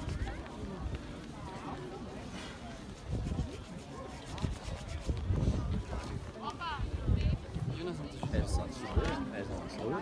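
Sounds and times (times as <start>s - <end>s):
spectators talking: 0.0s - 10.0s
wind rumble on microphone: 2.8s - 9.6s.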